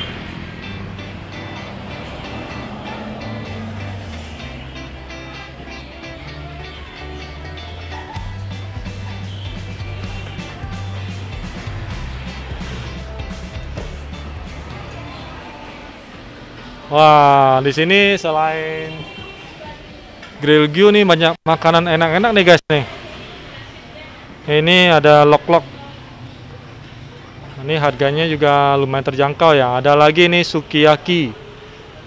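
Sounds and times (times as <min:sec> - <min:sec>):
background music with bass line: 0:00.0 - 0:15.4.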